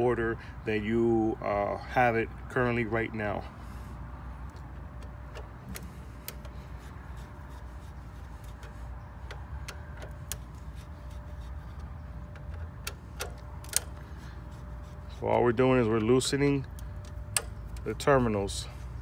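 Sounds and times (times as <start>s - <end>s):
hand tool clicking on terminal screws: 4.5s - 6.7s, 8.3s - 18.1s.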